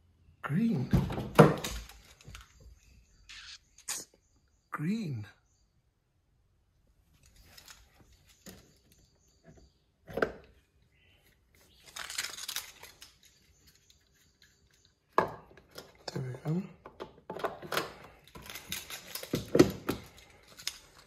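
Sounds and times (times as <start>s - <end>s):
handling and shuffling noises: 7.0s - 9.1s
rustling: 7.0s - 9.1s.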